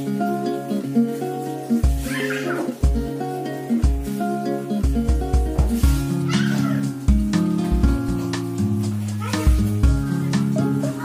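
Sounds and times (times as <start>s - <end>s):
background music with steady beat: 0.0s - 11.0s
cat meow: 2.1s - 2.8s, 9.2s - 9.6s.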